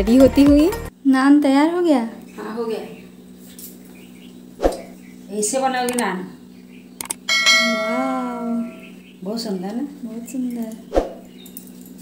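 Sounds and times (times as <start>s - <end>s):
short clicks: 7.0s - 7.2s
bright metallic ring: 7.3s - 8.9s.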